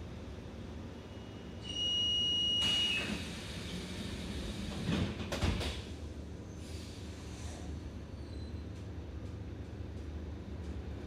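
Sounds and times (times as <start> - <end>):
long high warning beep: 1.1 - 3.0
sliding doors closing with thud: 2.6 - 6.0.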